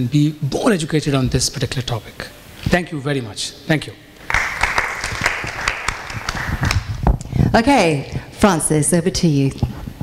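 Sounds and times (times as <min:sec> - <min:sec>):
small audience applauding: 0:04.2 - 0:07.0.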